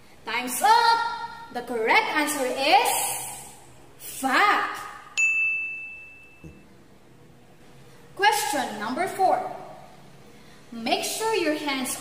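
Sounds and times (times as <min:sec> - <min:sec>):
high bell-like ding: 0:05.2 - 0:06.6.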